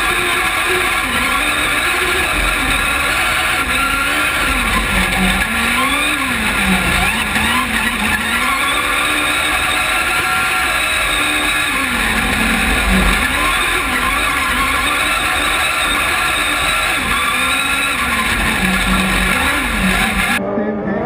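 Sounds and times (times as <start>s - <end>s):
buggy engine accelerating hard: 0.0s - 21.0s.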